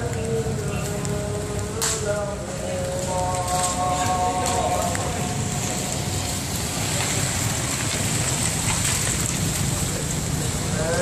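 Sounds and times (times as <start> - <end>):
street noise hiss: 0.0 - 11.0.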